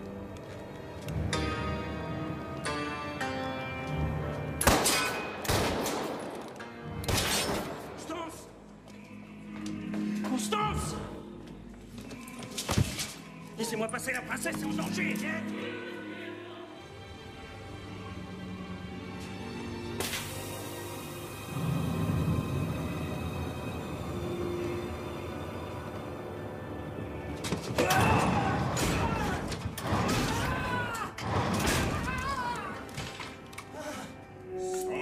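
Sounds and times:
dark sustained music: 0.0s - 35.0s.

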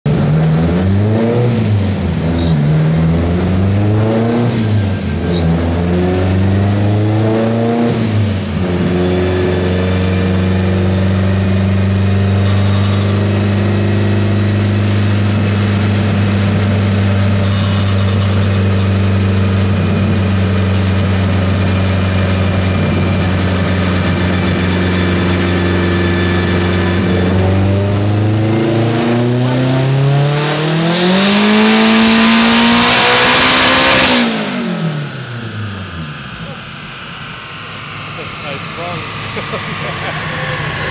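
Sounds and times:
turbocharged car engine revving: 0.1s - 40.9s.

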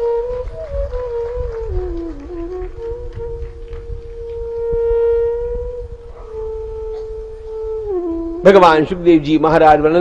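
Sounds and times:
flute holding long notes: 0.0s - 9.8s.

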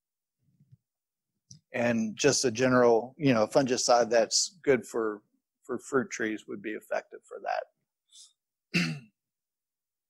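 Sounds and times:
man clearing his throat: 8.7s - 9.2s.

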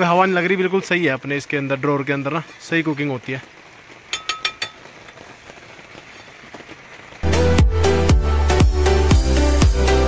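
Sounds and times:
rain pattering: 0.0s - 9.9s.

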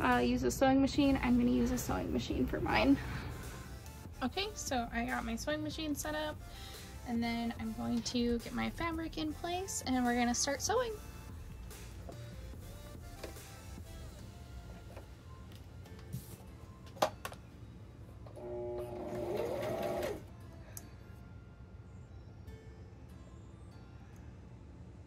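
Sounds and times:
faint background music: 0.0s - 25.0s
electric sewing machine humming: 18.3s - 20.3s.

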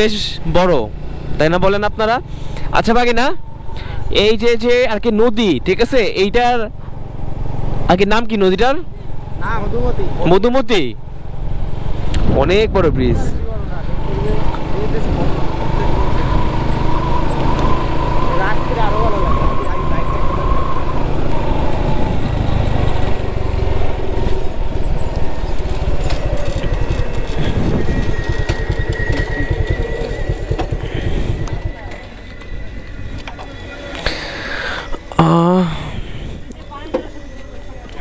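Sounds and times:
motorcycle engine running: 5.7s - 38.0s
wind rushing over microphone: 12.0s - 14.2s, 15.1s - 33.7s.

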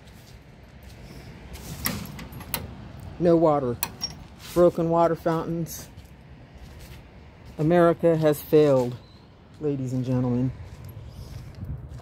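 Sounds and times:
steady low rumble: 10.5s - 12.0s.

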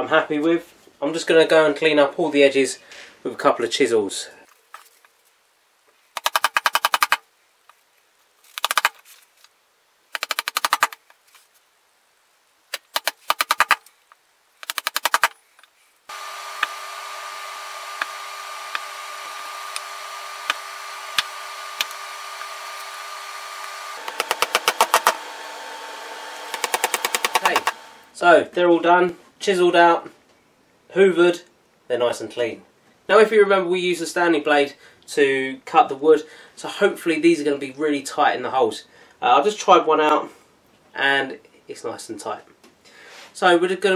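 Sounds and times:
machine whirring: 16.1s - 28.1s.

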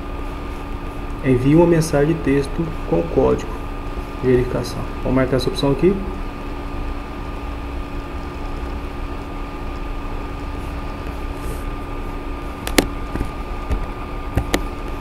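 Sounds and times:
recording hum and hiss: 0.0s - 15.0s.

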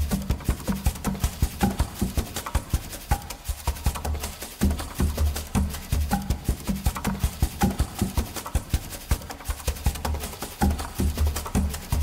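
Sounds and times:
rapid drum or wood-block strikes: 0.0s - 12.0s.

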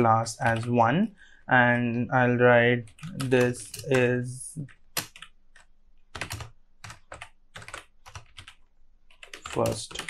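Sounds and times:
typing on computer keyboard: 2.8s - 10.0s.

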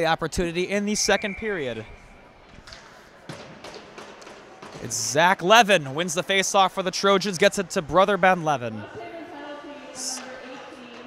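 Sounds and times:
faint ice rink ambience: 0.0s - 11.0s
hockey sticks striking ice: 2.5s - 5.0s.

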